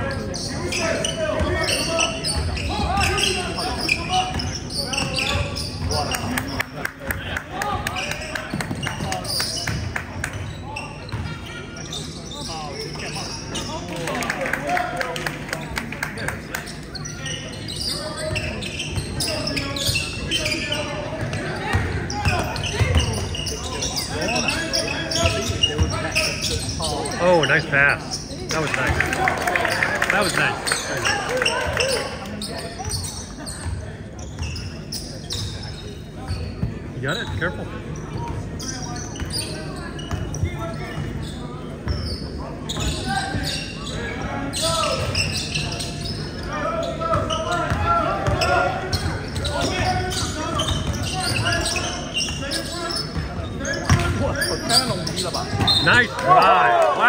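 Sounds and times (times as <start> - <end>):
voices in a large hall: 0.0 - 57.0.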